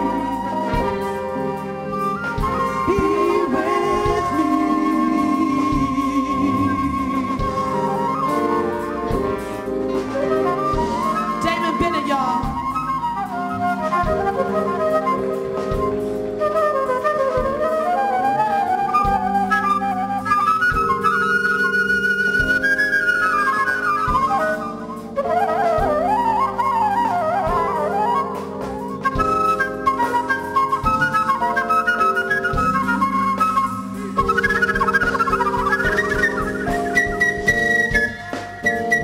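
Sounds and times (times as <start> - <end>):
flute solo: 0.0 - 39.0
live band playing: 0.0 - 39.0.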